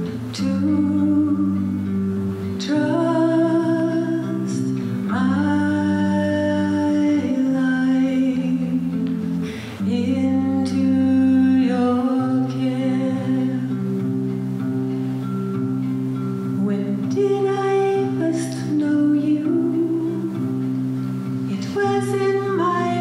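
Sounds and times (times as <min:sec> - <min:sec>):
woman singing: 0:00.0 - 0:14.7, 0:15.3 - 0:23.0
guitar: 0:00.0 - 0:23.0.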